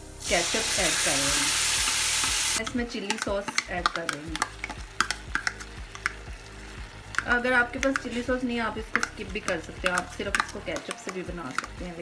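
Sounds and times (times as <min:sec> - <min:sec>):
spoon scraping plastic cup: 0:08.8 - 0:12.0.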